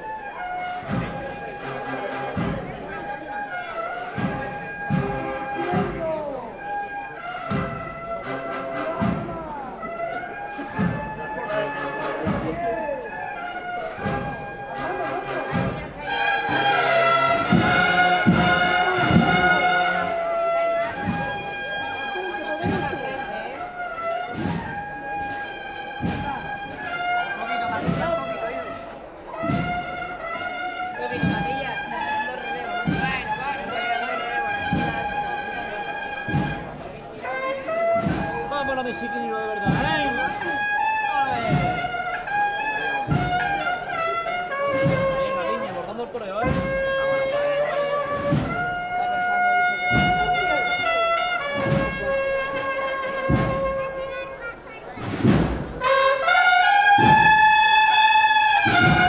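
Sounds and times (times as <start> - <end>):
cornets playing melody: 0.0 - 45.8, 46.6 - 54.4, 55.8 - 59.0
steady drum beat: 0.6 - 3.2, 3.9 - 59.0.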